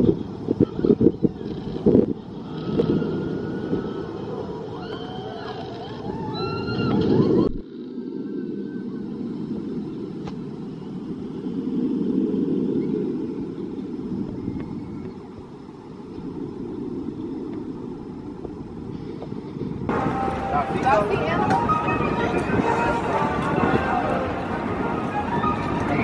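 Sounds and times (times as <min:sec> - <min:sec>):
roller coaster wheels rumbling: 0:00.0 - 0:26.0
riders screaming: 0:02.4 - 0:07.5.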